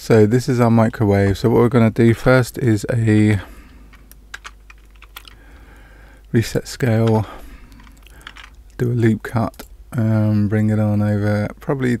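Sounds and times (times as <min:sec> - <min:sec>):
computer keyboard keys clicking: 0:03.9 - 0:05.4.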